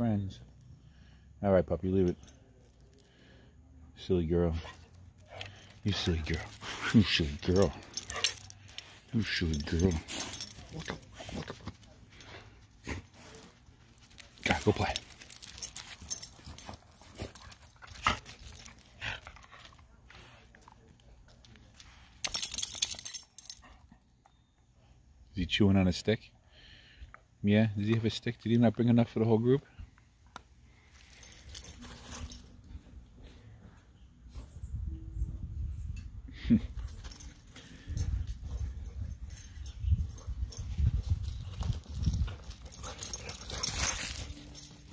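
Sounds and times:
dogs panting: 4.6 - 20.9, 41.6 - 44.9.

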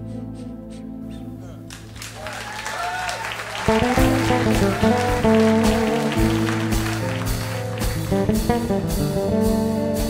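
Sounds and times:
audience applause: 1.7 - 8.4
live band playing: 3.2 - 10.0.

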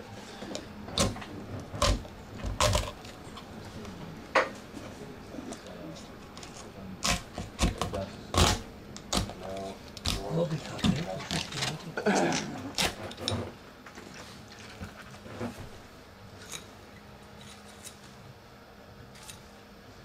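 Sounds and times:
knife chopping on wooden board: 7.0 - 9.4.

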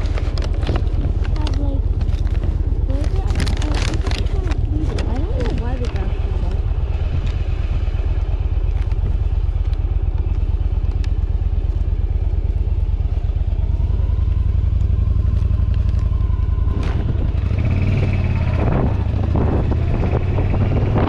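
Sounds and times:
motorcycle engine idling: 0.0 - 20.8.

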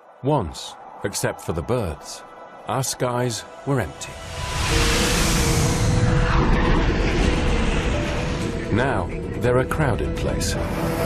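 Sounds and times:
aircraft passing roar: 4.0 - 9.4.

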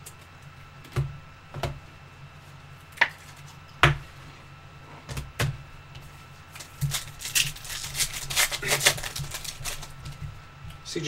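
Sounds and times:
trading cards rustling: 6.5 - 10.2.

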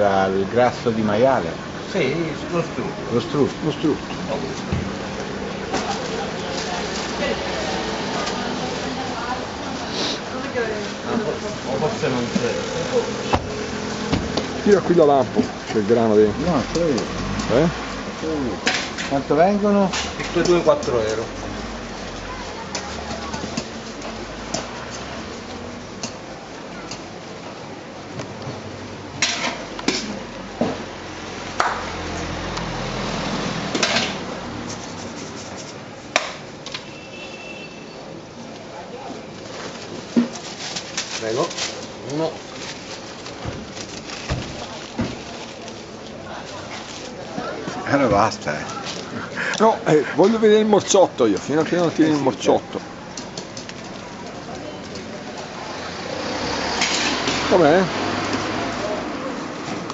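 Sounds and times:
outdoor street noise: 0.0 - 59.9.

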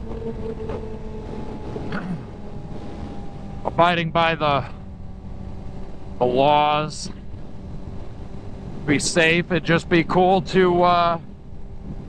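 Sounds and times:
wind noise: 0.0 - 9.6, 10.4 - 12.0
motorcycle engine cruising: 0.0 - 12.0
road rumble: 0.0 - 12.0.

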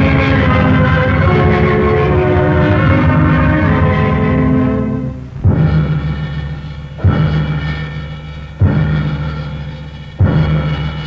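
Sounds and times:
orchestral sustained chords: 0.0 - 7.6
rapid low drum roll: 5.2 - 7.8.

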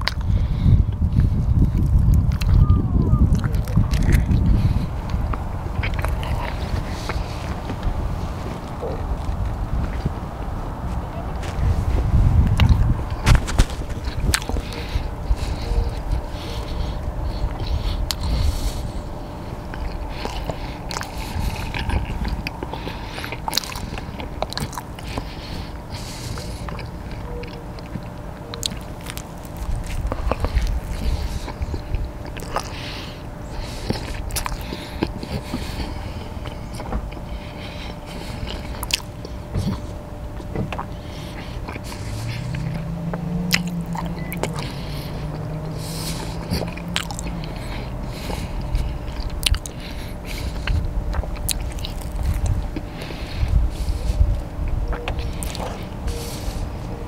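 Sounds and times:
person chewing crunchy food: 0.0 - 2.6, 3.2 - 57.0
mouth clicks and crackles: 0.0 - 57.0
low thuds: 0.7 - 16.4.

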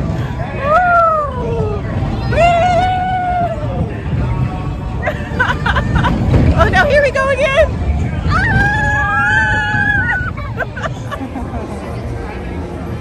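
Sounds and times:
crowd babble: 0.0 - 13.0
woman laughing: 5.0 - 6.2, 10.4 - 11.7.

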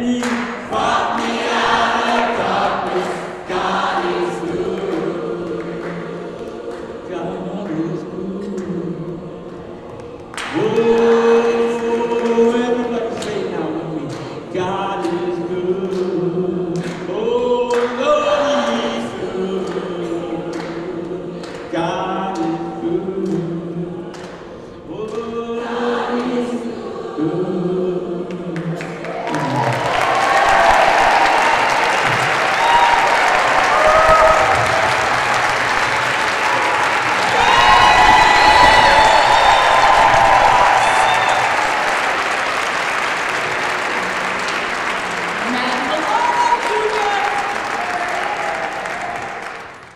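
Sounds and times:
gospel choir singing: 0.0 - 49.9
audience applause: 9.9 - 12.7, 28.7 - 49.9
voices cheering: 29.0 - 49.7.

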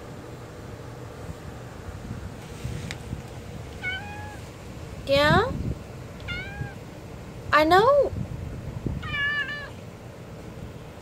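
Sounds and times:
cat meowing: 3.8 - 4.5, 6.2 - 6.8, 9.0 - 9.8.

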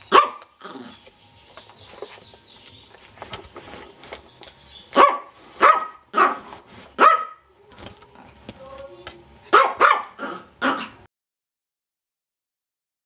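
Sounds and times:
small dog barking: 0.1 - 0.9, 4.9 - 7.5, 9.5 - 11.1.

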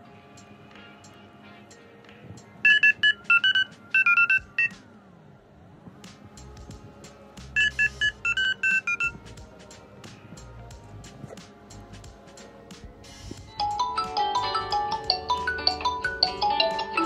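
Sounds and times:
background music: 0.0 - 17.0
phone keypad beeps: 2.6 - 4.8, 7.6 - 9.1.

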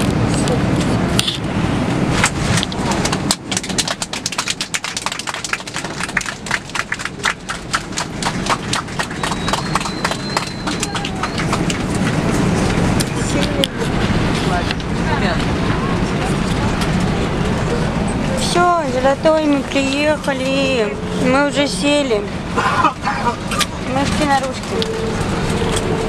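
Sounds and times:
airliner cabin low rumble: 0.0 - 26.0.

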